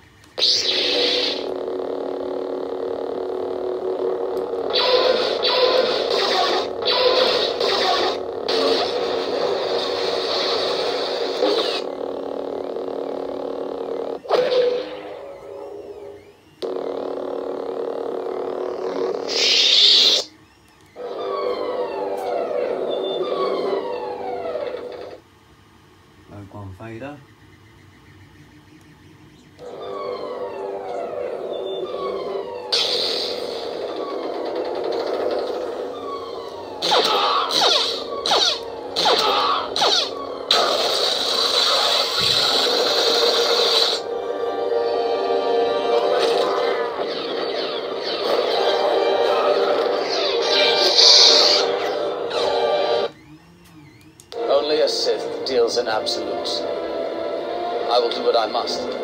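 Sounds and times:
lightsaber humming: 0:00.0 - 0:59.0
sharp crackling effects: 0:00.2 - 0:15.4, 0:16.6 - 0:20.3, 0:32.1 - 0:44.1, 0:45.8 - 0:52.5.

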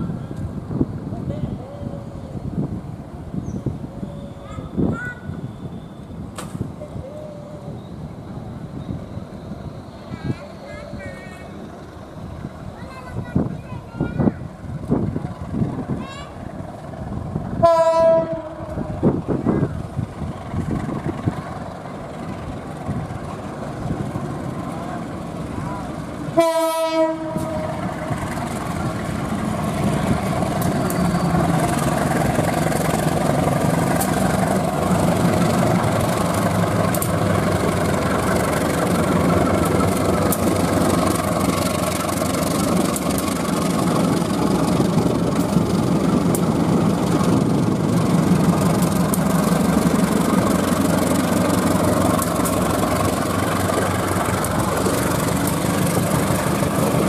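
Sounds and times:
locomotive engine drone: 0:00.0 - 0:13.7, 0:14.4 - 0:57.0
train wheels rumbling on rails: 0:00.0 - 0:57.0.

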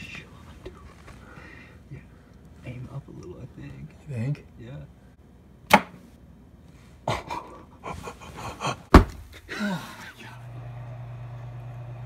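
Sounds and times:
sharp knock: 0:05.7 - 0:06.0.

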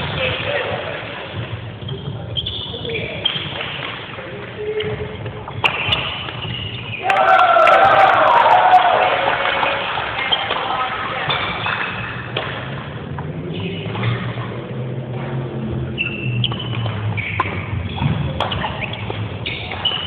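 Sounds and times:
shoes squeaking on court floor: 0:00.0 - 0:07.1, 0:10.2 - 0:14.3, 0:15.1 - 0:20.0
racket hitting shuttlecock: 0:05.5 - 0:07.0, 0:11.3 - 0:12.8, 0:16.4 - 0:20.0.

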